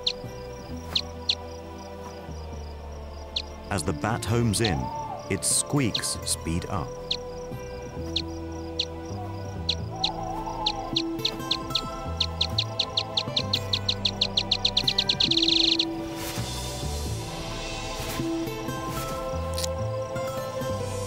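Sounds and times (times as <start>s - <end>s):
bat echolocation clicking squeaks: 0.0s - 1.5s, 3.2s - 16.0s, 19.4s - 19.8s
low sustained music tones: 0.0s - 21.0s.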